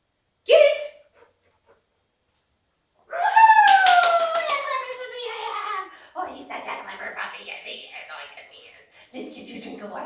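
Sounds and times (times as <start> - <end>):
hand claps: 3.6 - 5.1.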